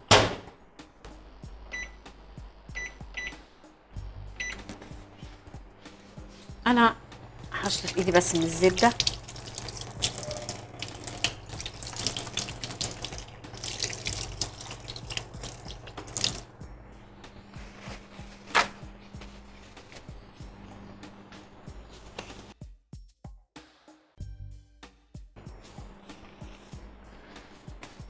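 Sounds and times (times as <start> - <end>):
hands rinsed under water: 7.6 - 16.5.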